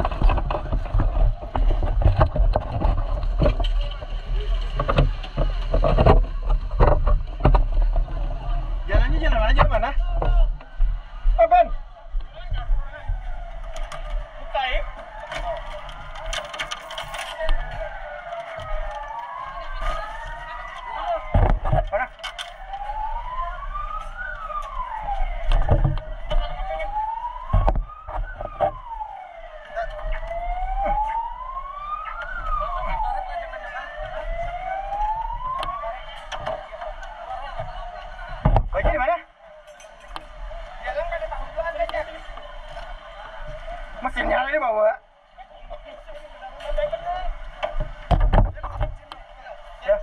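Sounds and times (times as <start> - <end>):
sirens wailing: 0.0 - 50.0.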